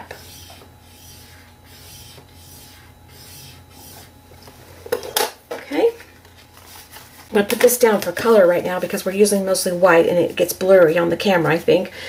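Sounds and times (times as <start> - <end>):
bone folder scraping card: 0.0 - 4.2.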